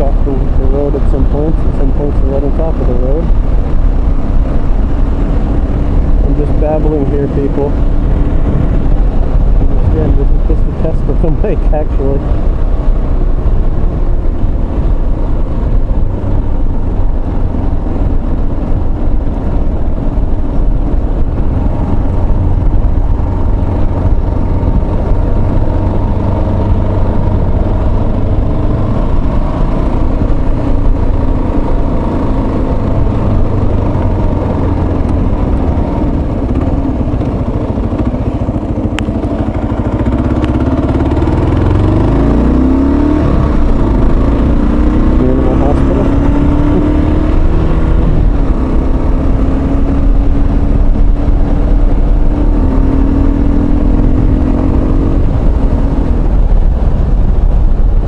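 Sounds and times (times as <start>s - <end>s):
motorcycle engine running: 0.0s - 58.0s
wind rumble: 0.0s - 58.0s.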